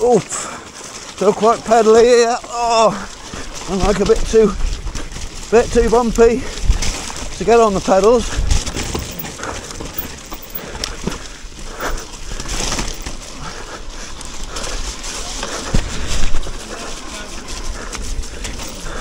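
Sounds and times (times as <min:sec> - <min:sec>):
tyres crunching on stones: 0:00.0 - 0:19.0
wind on microphone: 0:08.2 - 0:09.1.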